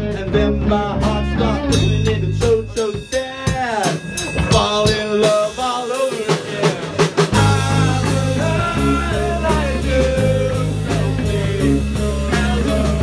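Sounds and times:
electric guitar: 0.0 - 4.7, 6.8 - 13.0
bass guitar: 0.0 - 13.0
drums: 0.0 - 13.0.

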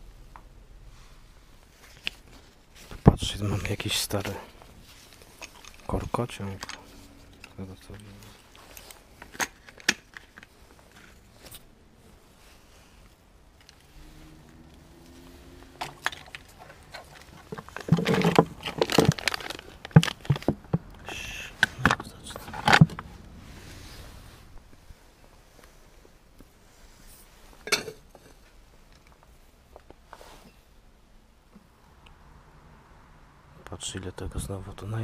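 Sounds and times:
clattering and rustling: 0.2 - 23.2, 26.8 - 30.7
objects clicking and knocking: 15.8 - 23.1.

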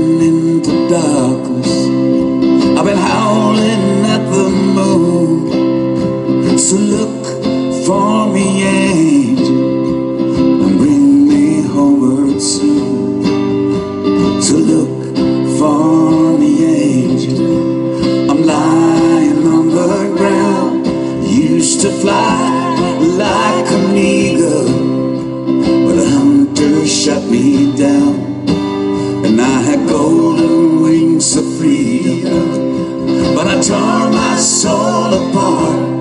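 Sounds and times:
person singing: 0.0 - 13.4, 14.2 - 36.0
acoustic guitars strummed and picked: 0.0 - 36.0.

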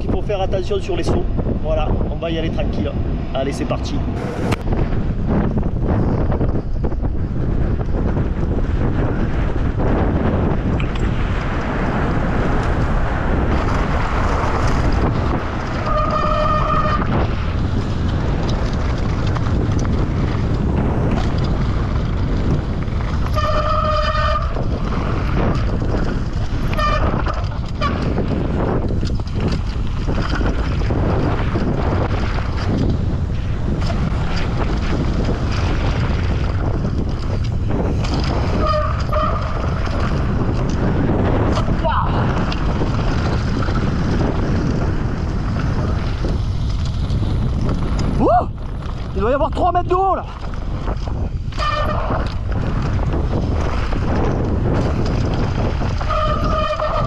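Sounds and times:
wind buffeting microphone: 0.0 - 57.0
bike rattling over rocky trail: 0.6 - 57.0.

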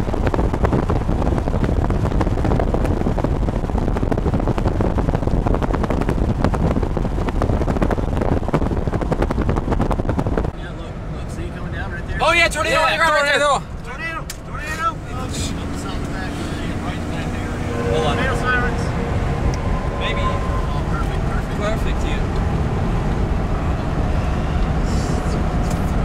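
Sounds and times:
car road and engine rumble: 0.0 - 26.0.

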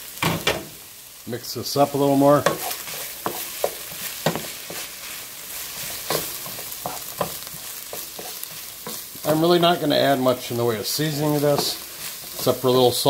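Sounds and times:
meat and cabbage sizzling in pan: 0.0 - 13.0
wooden spoon scraping a pan: 2.1 - 13.0.

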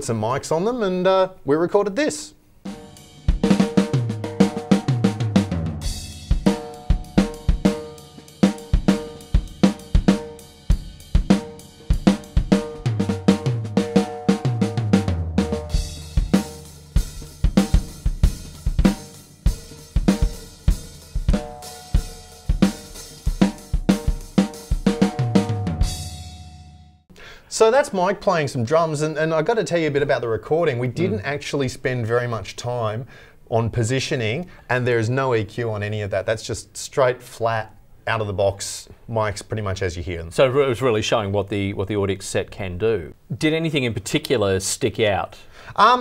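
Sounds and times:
drum kit groove: 2.6 - 27.0, 28.9 - 31.9.

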